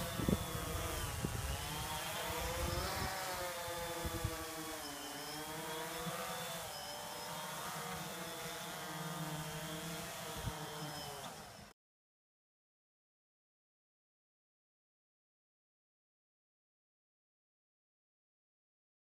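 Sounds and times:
drone propellers whining: 0:00.0 - 0:11.7.

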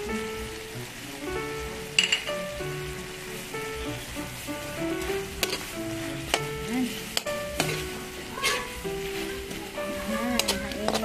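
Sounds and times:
food sizzling in a wok: 0:00.0 - 0:11.0
simple background melody: 0:00.0 - 0:11.0
metal ladle clinking on pan: 0:02.0 - 0:02.3, 0:07.2 - 0:08.7, 0:10.3 - 0:11.0.

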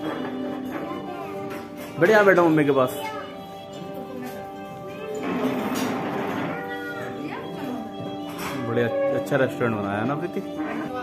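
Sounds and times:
background music with held notes: 0:00.0 - 0:11.0
child whining: 0:06.3 - 0:07.5.

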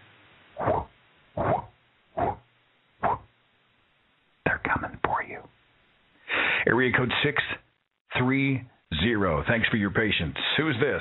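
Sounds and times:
man imitating whooshing blades: 0:00.6 - 0:02.4.

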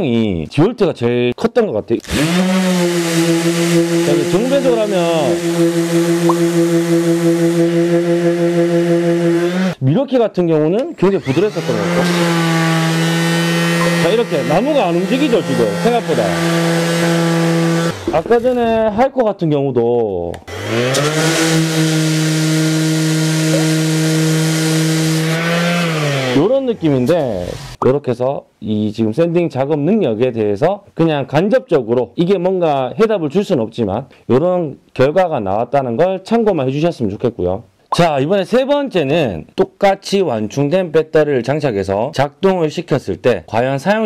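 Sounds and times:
orbital sander running: 0:02.1 - 0:09.8, 0:11.1 - 0:18.3, 0:20.5 - 0:26.6.

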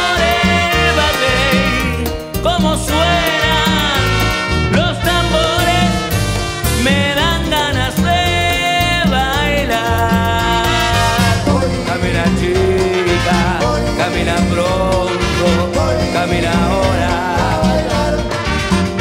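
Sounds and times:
people singing: 0:00.0 - 0:06.2, 0:06.8 - 0:19.0
horn lines: 0:00.0 - 0:07.9, 0:10.5 - 0:19.0
congas: 0:00.0 - 0:19.0
live band playing dance groove: 0:00.0 - 0:19.0.

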